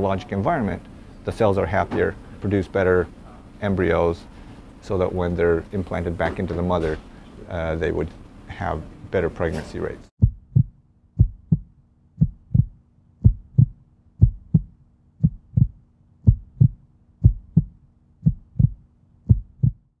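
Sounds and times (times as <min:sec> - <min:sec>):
heartbeat thumps: 0:10.2 - 0:20.0.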